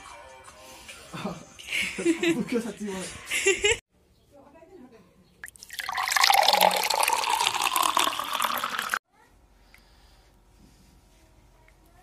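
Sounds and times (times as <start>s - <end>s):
water pouring into a mug: 5.4s - 9.0s.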